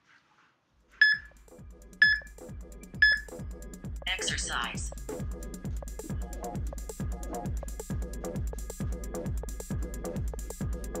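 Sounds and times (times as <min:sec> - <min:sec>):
short electronic beeps: 0:01.0 - 0:01.3, 0:02.0 - 0:03.3
electronic dance music: 0:04.1 - 0:05.1.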